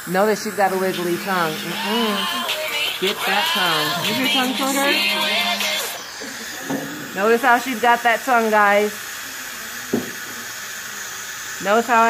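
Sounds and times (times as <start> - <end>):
suction hissing: 0.0 - 12.0.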